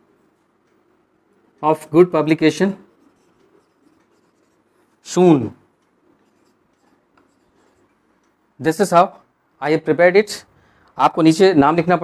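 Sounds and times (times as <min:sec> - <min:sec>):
marker pen scratching whiteboard: 0:02.9 - 0:05.1, 0:06.0 - 0:08.2.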